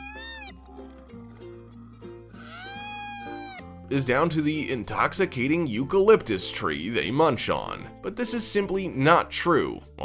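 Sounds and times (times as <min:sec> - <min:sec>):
koala crying out: 0:00.0 - 0:00.7, 0:02.4 - 0:03.7
background music: 0:00.0 - 0:10.0.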